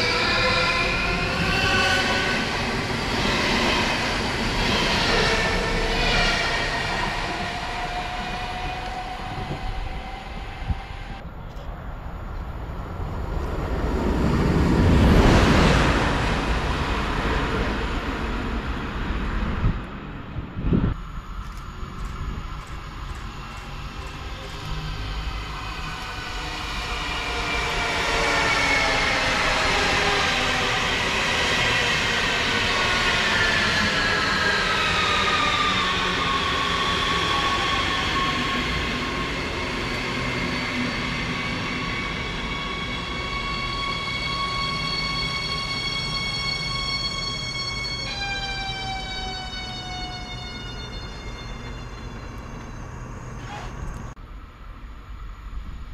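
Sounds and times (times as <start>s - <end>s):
train wheels rumbling: 0.0s - 54.2s
train traction whine: 0.0s - 55.9s.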